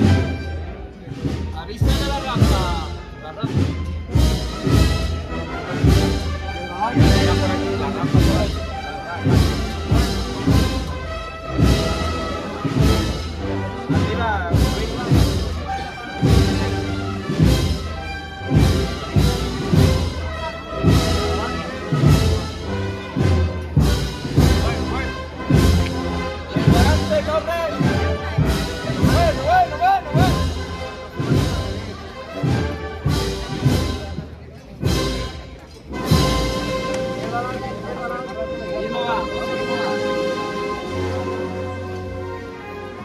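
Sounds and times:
heavy drum strokes: 0.0 - 37.8
wind band playing a slow march: 0.0 - 43.0.

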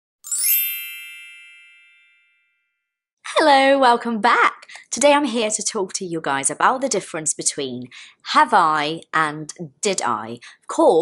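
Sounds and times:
bright bell-like chime: 0.2 - 3.0.

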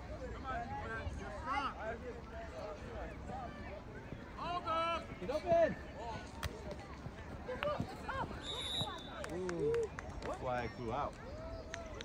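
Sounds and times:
whistle blast: 8.4 - 9.2.

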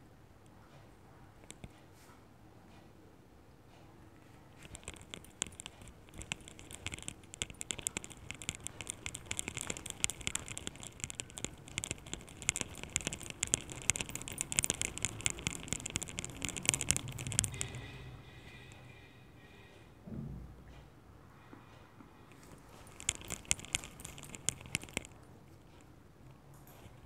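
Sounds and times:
palms rolling modelling clay: 4.5 - 18.0, 22.3 - 25.9.

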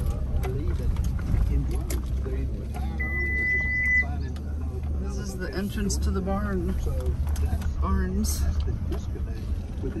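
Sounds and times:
vehicle cabin rumble: 0.0 - 10.0
high beep: 3.0 - 4.1.

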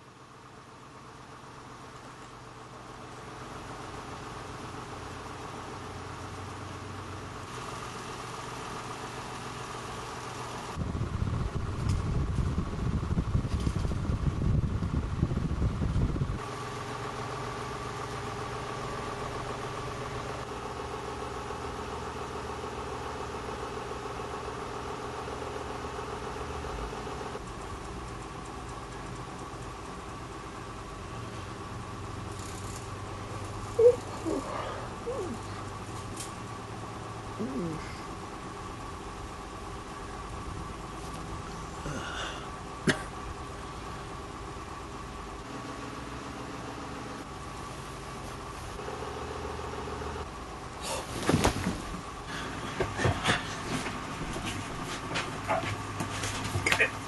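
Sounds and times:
electric fan humming: 0.0 - 57.0
loud low rumble: 10.8 - 16.4.

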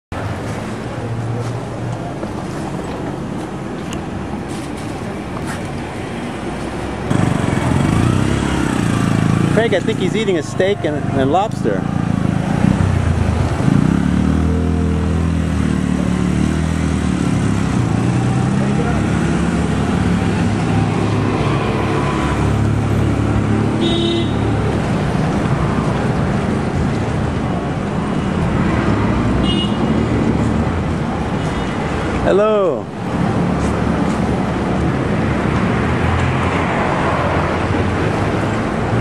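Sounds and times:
vehicle engines passing: 0.1 - 39.0.

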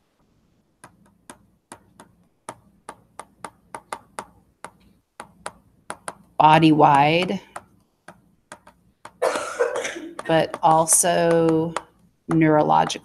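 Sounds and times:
stylus tapping while writing: 0.7 - 13.0.

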